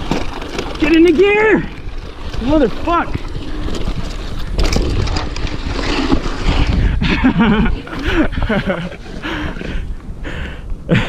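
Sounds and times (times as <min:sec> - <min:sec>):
bike rattling over dirt: 0:00.0 - 0:10.2
wind buffeting microphone: 0:00.0 - 0:11.0.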